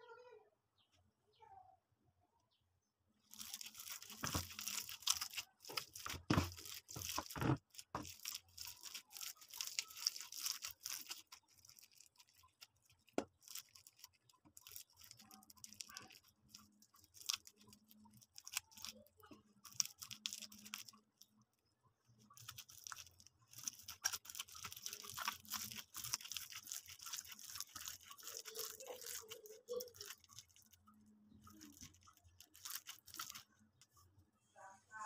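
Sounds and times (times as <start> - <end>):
food crunching and scraping by hand: 3.2 - 34.0.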